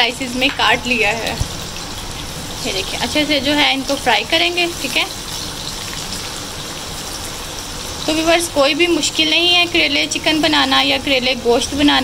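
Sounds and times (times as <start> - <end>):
onions sizzling in frying pan: 0.0 - 12.0.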